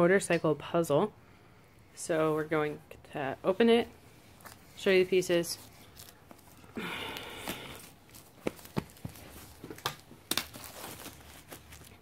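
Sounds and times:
plastic bag crinkling: 0:04.3 - 0:12.0.

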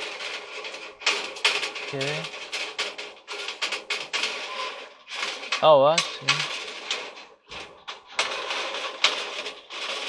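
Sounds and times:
metal clicks and rattles: 0:00.0 - 0:10.0.

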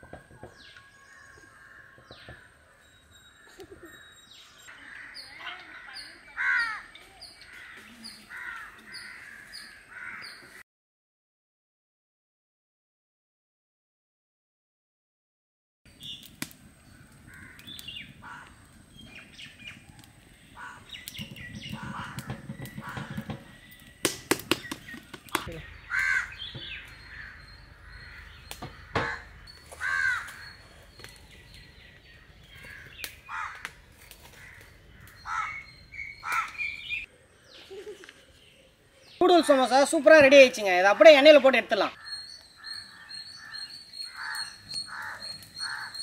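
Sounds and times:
birds calling: 0:00.0 - 0:10.6, 0:15.9 - 0:46.0
steel cooking pots clicking: 0:20.6 - 0:25.5.

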